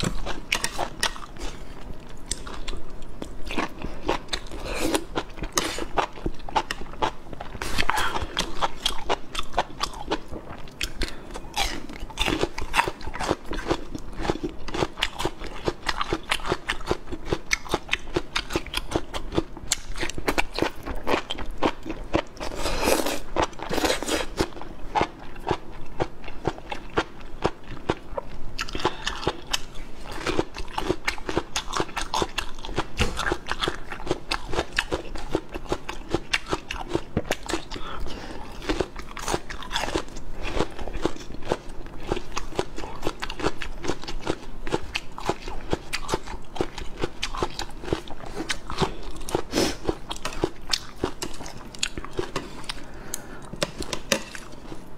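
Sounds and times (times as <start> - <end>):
crunching and chewing shallots: 0.0 - 54.9.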